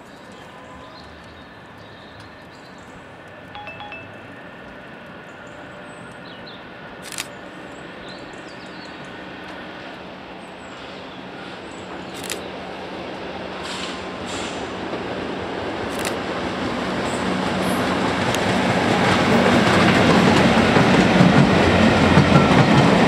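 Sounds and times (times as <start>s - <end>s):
train rumble approaching: 3.6s - 23.0s
sharp click: 12.2s - 12.4s, 15.9s - 16.2s.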